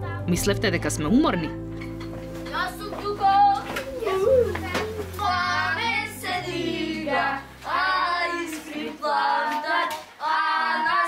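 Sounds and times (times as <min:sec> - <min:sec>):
children chanting: 0:03.2 - 0:11.0
hands clapping: 0:03.6 - 0:05.1.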